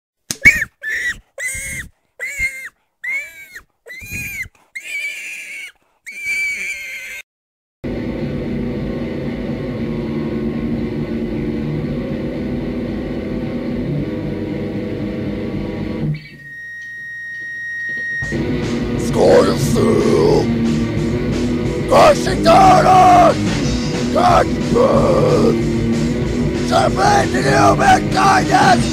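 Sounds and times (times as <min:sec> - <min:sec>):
squeaks rising and falling in pitch: 0:00.4 - 0:07.2, 0:16.2 - 0:18.4
high sustained whine: 0:07.9 - 0:21.2.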